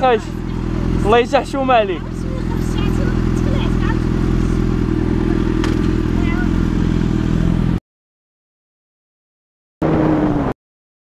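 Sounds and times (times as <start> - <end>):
motorcycle engine idling: 0.0 - 7.8.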